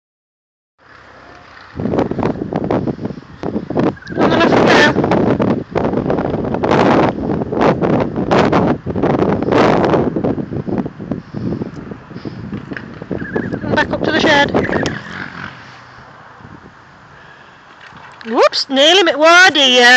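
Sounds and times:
wind buffeting the microphone: 0:01.5 - 0:19.9.

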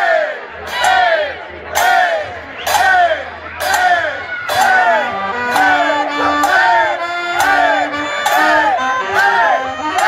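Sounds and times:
brass and drum street band: 0:00.0 - 0:10.0
voices shouting in unison: 0:00.0 - 0:10.0.

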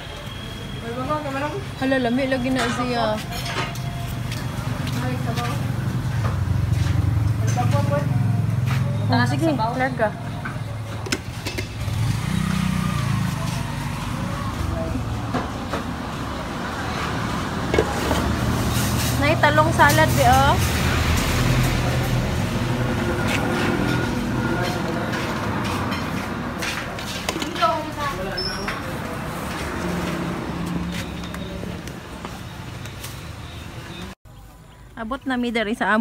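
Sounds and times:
vehicle engine humming: 0:00.0 - 0:34.8.

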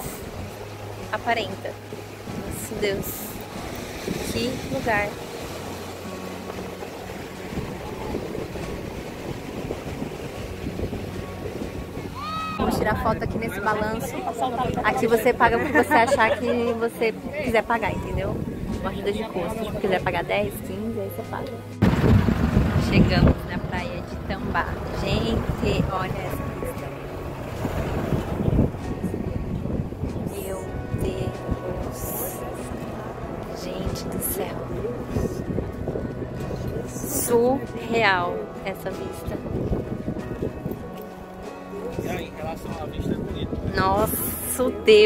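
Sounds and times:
sea waves washing onto beach: 0:00.0 - 0:20.1, 0:21.8 - 0:44.9
wind on microphone: 0:02.0 - 0:15.8, 0:17.0 - 0:20.6, 0:21.8 - 0:45.0.

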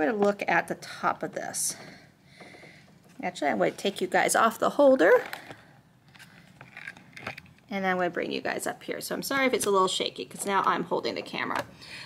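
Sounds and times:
camera handling clicks and rubbing: 0:06.0 - 0:07.7.

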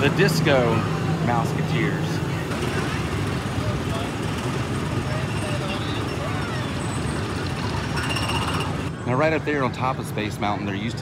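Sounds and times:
small engines droning: 0:00.0 - 0:10.1
faint voices: 0:00.0 - 0:11.0.

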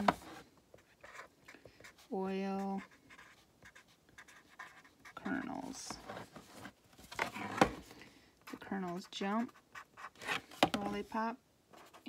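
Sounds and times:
pen scratching on paper: 0:00.0 - 0:05.6, 0:08.4 - 0:10.4, 0:11.7 - 0:12.0.

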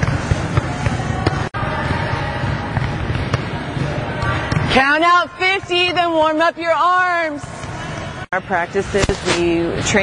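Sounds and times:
volleyballs thudding: 0:00.0 - 0:05.0.

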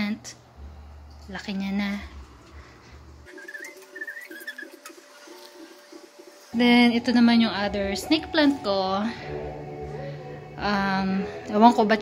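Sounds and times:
low repeated bird notes: 0:03.2 - 0:12.0
wavering high bird calls: 0:03.3 - 0:05.3.

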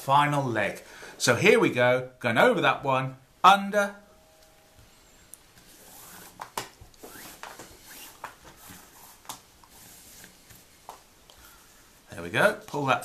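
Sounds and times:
cord rustling and sliding: 0:04.8 - 0:13.0.

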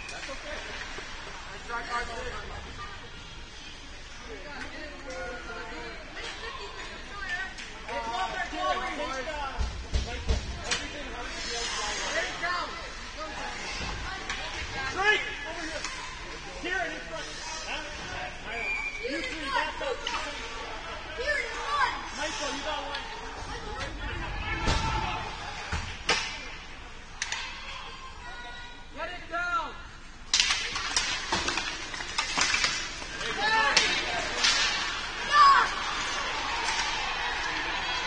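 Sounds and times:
spectator chatter: 0:00.0 - 0:29.1, 0:30.4 - 0:38.0.

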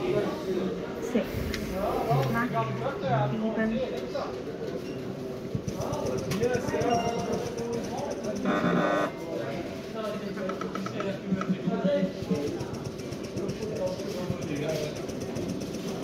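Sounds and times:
indistinct talking: 0:00.0 - 0:16.0.

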